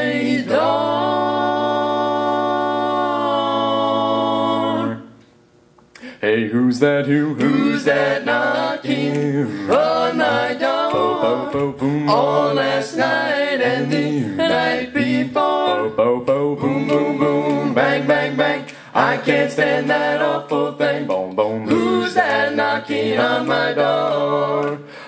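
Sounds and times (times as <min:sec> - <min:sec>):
male a cappella quartet singing: 0:00.0 - 0:05.2, 0:06.2 - 0:25.0.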